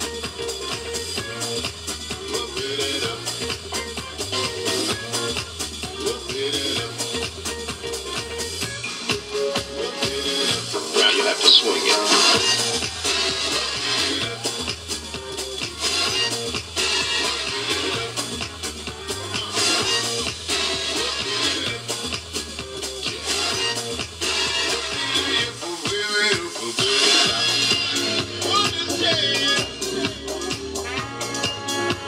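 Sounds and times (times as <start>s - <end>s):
dance music with steady beat: 0.0s - 32.0s.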